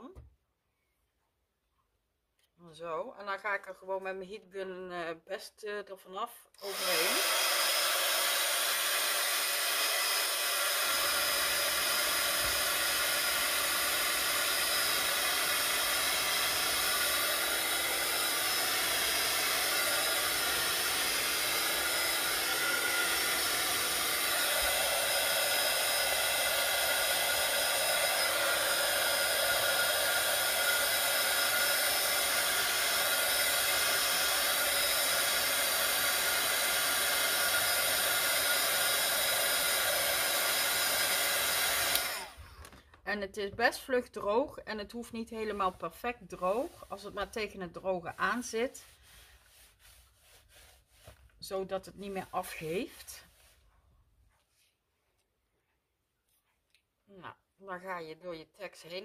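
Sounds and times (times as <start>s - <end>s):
heat gun blowing: 6.6s - 42.8s, 45.6s - 47.5s, 48.2s - 51.2s.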